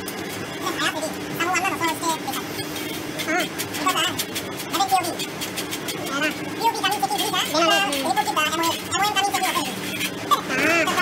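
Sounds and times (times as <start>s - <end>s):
motor engine running: 0.0s - 11.0s
people talking: 0.6s - 2.5s, 3.2s - 5.3s, 6.0s - 11.0s.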